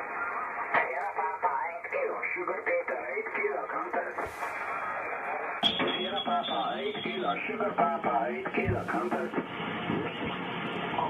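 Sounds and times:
radio voice from loudspeaker: 1.0s - 9.4s.

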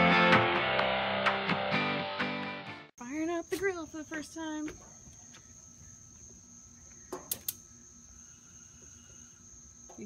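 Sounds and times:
high-pitched insect drone: 5.4s - 10.0s
grill igniter clicks: 7.1s - 7.6s.

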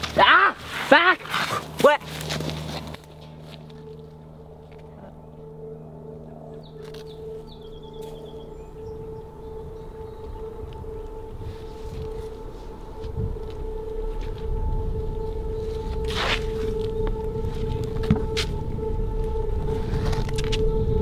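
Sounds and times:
steady held drone tone: 0.0s - 21.0s
low rumble: 1.5s - 21.0s.

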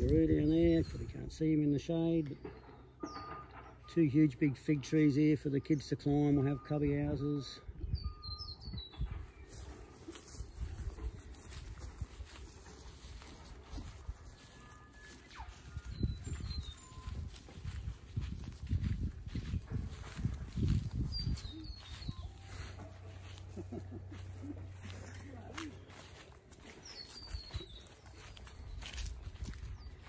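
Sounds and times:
high bird chirps: 7.7s - 11.6s, 13.0s - 30.0s
thumps from walking on grass: 8.9s - 30.0s.

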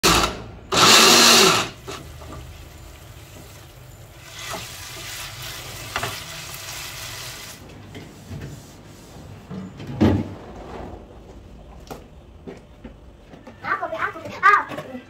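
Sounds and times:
blender grinding: 0.0s - 2.0s
stir-frying in a pan: 1.8s - 7.6s.

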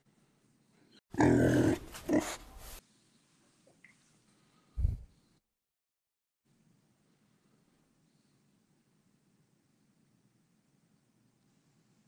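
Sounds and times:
loud animal growl: 1.2s - 2.4s.

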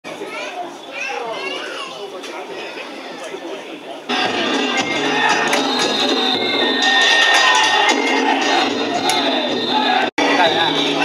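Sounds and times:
children calling out and chattering: 0.0s - 11.0s.

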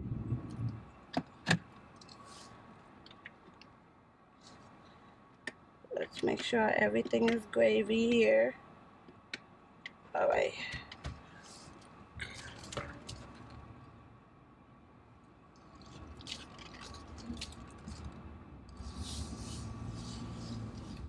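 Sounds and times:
car engine and road noise: 0.0s - 21.0s.

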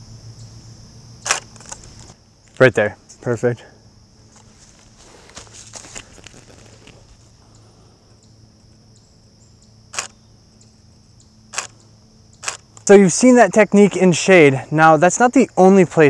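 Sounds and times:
camera shutter clicks: 1.2s - 1.8s, 9.9s - 10.2s, 11.5s - 11.7s, 12.4s - 12.6s.

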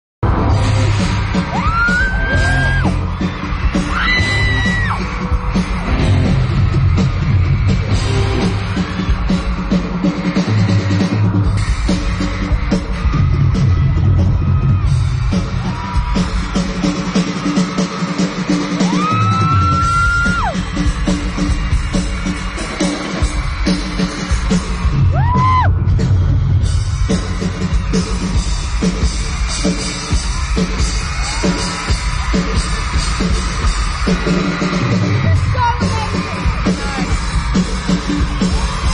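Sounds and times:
crowd screaming: 0.2s - 38.9s
drum kit solo: 0.2s - 38.9s.

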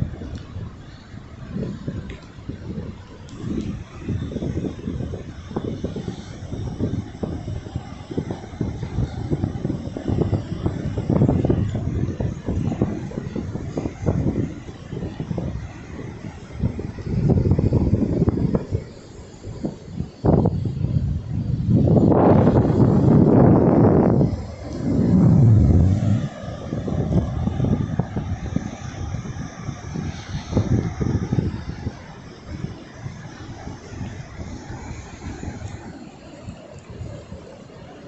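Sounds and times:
wind buffeting microphone: 0.0s - 37.8s
faint surf: 24.2s - 27.4s.

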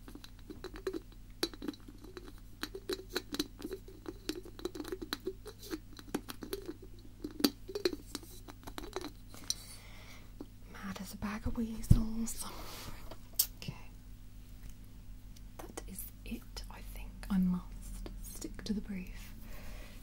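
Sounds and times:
fingers tapping on hard objects: 0.1s - 9.1s.

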